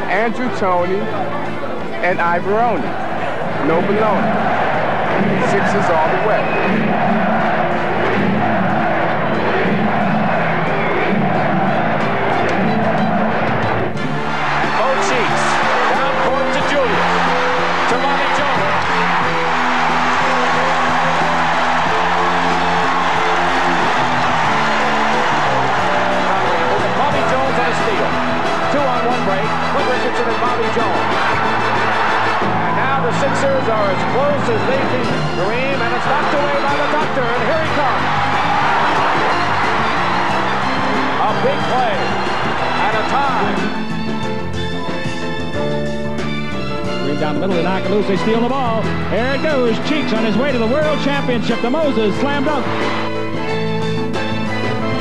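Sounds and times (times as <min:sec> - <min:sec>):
crowd cheering: 0:00.0 - 0:55.0
music playing: 0:00.0 - 0:55.0.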